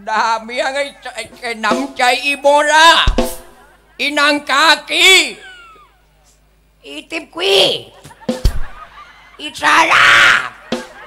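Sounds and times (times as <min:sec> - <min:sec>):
person shouting loudly: 0:07.3 - 0:08.0, 0:09.4 - 0:10.6
sharp knock: 0:08.3 - 0:08.8.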